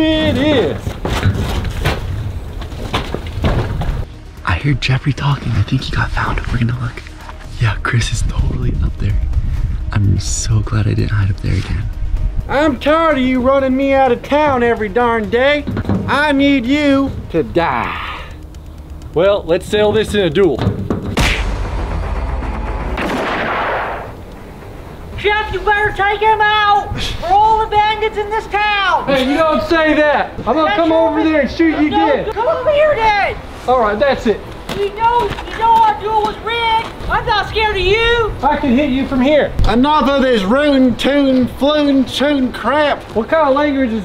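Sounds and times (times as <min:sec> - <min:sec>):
low rumbling noise: 0:01.0 - 0:28.3
boom and whoosh transition effect: 0:21.1 - 0:24.7
footsteps on rooftop: 0:34.4 - 0:37.3.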